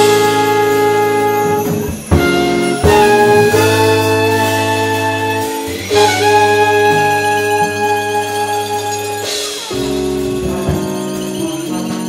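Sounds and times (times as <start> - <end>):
trumpet and trombone chord: 0.0 - 12.0.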